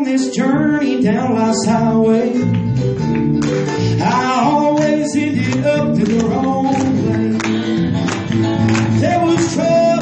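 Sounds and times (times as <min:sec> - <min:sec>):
man singing gospel song: 0:00.0 - 0:02.6, 0:03.8 - 0:07.4, 0:08.7 - 0:10.0
acoustic guitar: 0:00.0 - 0:10.0.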